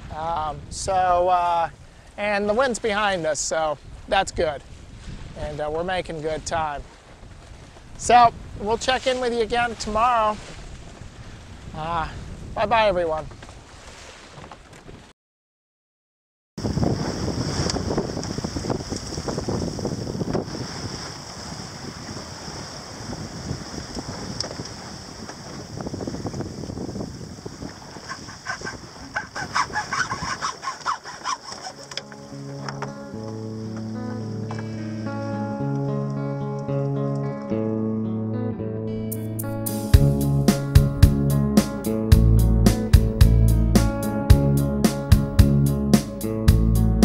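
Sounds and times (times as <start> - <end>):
water rushing past hull: 16.6 - 35.6
acoustic guitar music: 31.7 - 47.0.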